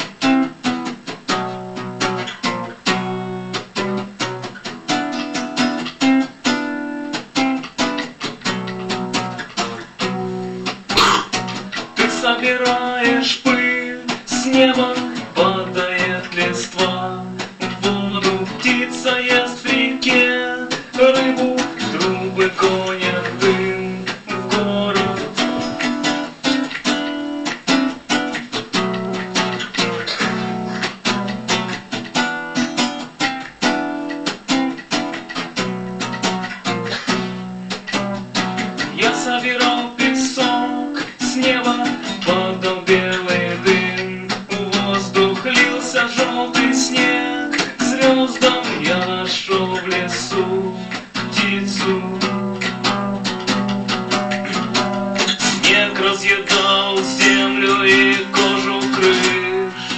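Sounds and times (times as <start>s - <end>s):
acoustic guitar strumming: 0.0s - 59.9s
man singing: 10.9s - 26.8s, 29.4s - 30.9s, 38.8s - 53.3s, 54.5s - 59.9s.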